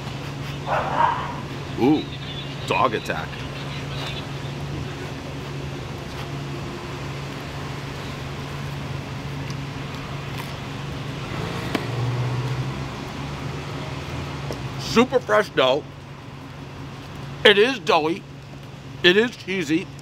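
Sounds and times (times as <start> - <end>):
street traffic engine hum: 0.0 - 20.0.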